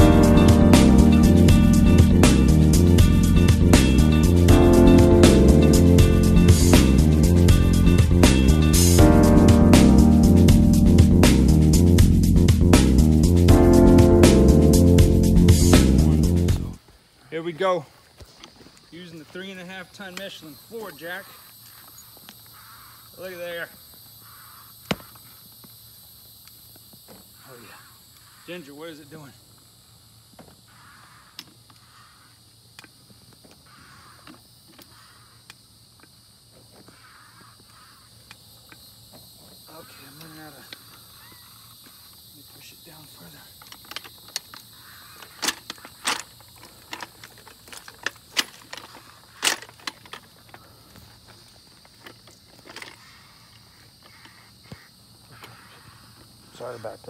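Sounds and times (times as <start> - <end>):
steady high buzz: 0.0 - 16.8.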